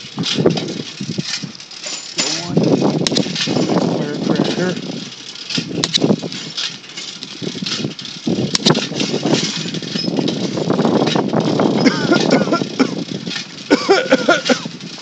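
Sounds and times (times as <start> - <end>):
camera rattling on moving bicycle: 0.0 - 15.0
sharp clicks: 3.0 - 3.6, 5.6 - 6.2, 8.5 - 8.9.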